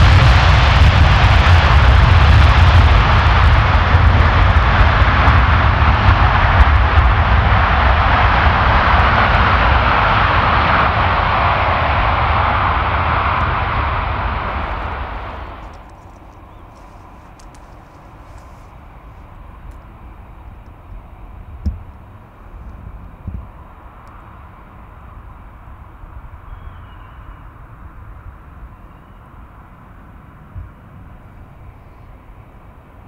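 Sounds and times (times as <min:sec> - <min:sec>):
jet engines at high power: 0:00.0 - 0:33.0.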